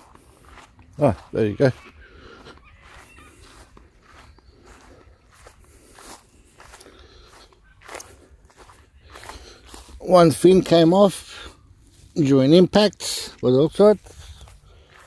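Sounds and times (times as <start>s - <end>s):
footsteps through grass: 0.0s - 15.0s.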